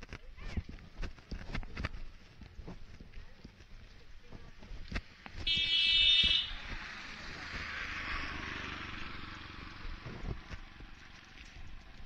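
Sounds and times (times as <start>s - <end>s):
hissing road noise: 3.5s - 12.0s
vehicle horn: 5.5s - 6.7s.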